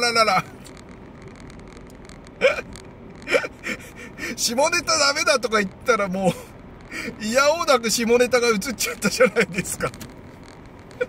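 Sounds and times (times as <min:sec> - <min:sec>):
car cabin road noise: 0:00.0 - 0:11.0
man's stifled laugh: 0:02.4 - 0:04.2.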